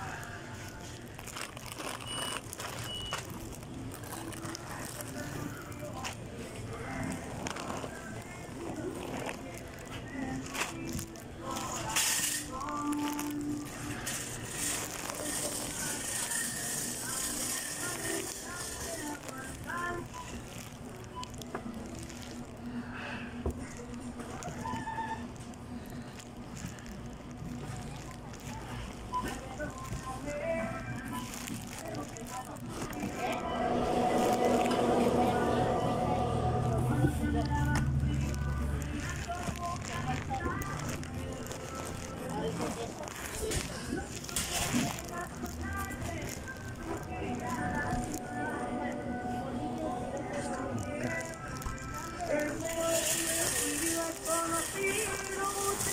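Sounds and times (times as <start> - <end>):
background music: 0.0 - 24.3, 28.8 - 55.9
indistinct chatter: 0.0 - 55.9.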